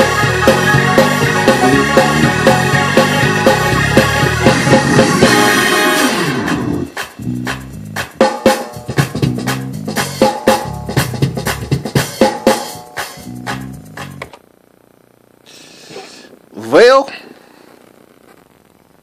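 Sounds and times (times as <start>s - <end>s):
gospel band with organ and horns: 0.0s - 7.0s.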